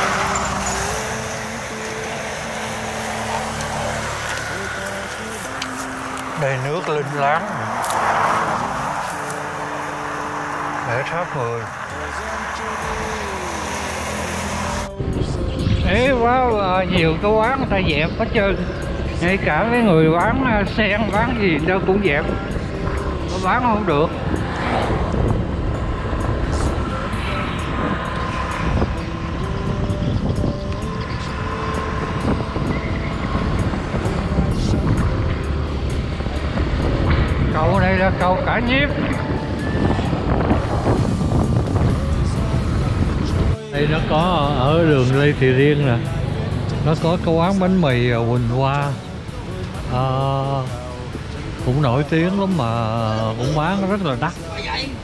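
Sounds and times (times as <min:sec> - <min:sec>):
low engine hum: 0:00.0 - 0:55.0
wind and tyre hiss: 0:00.0 - 0:55.0
wind on microphone: 0:22.2 - 0:45.4.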